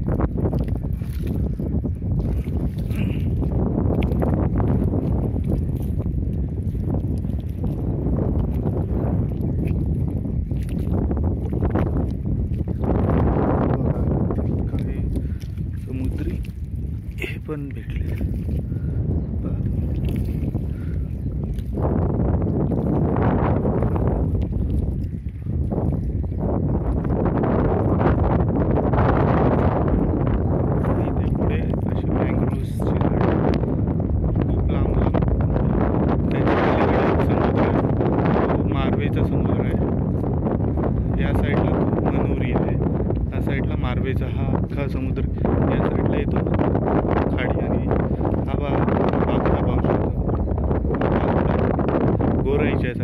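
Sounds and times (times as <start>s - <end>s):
footsteps in wet mud: 0.0s - 28.0s
wind buffeting microphone: 0.0s - 53.0s.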